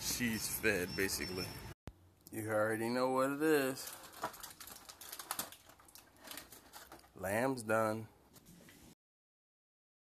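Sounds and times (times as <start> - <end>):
aluminum foil crinkling: 3.6 - 7.2.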